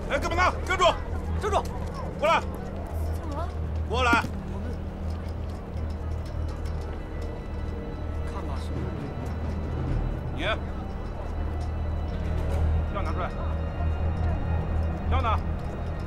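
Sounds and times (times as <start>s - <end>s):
low background music: 0.0s - 16.0s.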